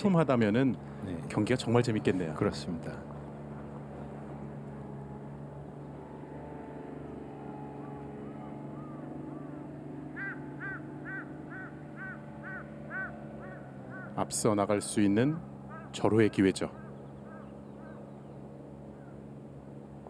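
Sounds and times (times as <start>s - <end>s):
steady low hum: 0.0s - 20.0s
bird calling: 7.6s - 19.4s.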